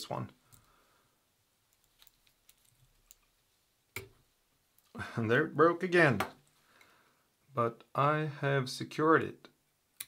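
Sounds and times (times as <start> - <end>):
small clicks and ticks: 1.7 - 3.3.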